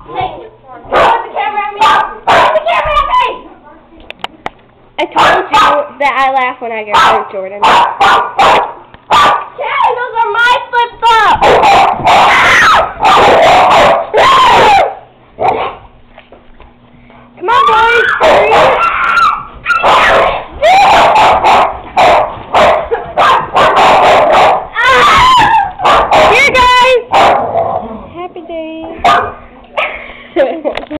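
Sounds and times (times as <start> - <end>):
dogs barking and yipping: 0.9 - 3.0, 5.1 - 5.9, 6.9 - 10.5, 11.1 - 15.8, 17.5 - 27.8, 29.0 - 30.0
girls screaming and laughing: 12.2 - 13.0, 17.5 - 21.2, 24.7 - 25.8.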